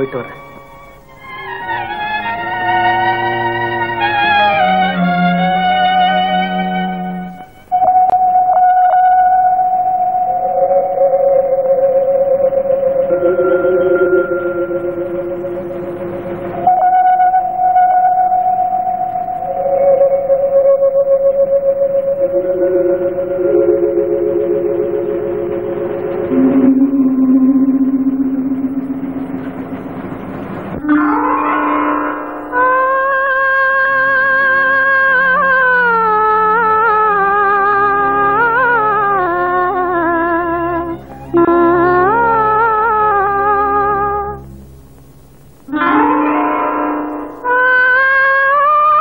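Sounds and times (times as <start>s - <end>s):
slow instrumental melody with vibrato: 0.0s - 49.0s.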